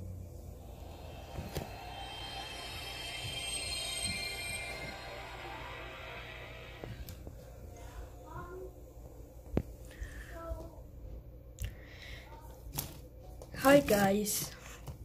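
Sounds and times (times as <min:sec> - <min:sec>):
sustained high chord: 0:00.0 - 0:09.0.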